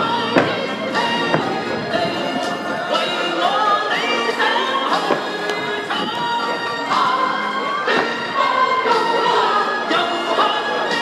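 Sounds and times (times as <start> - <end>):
recorded music over loudspeaker: 0.0 - 11.0.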